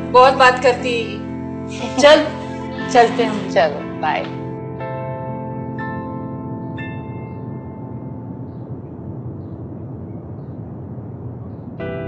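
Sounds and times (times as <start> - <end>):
ambient noise bed: 0.0 - 12.0
soft sustained score notes: 0.0 - 12.0.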